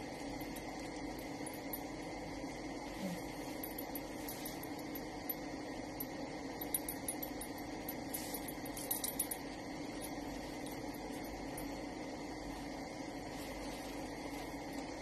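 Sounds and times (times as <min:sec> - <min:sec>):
low room hum: 0:00.0 - 0:15.0.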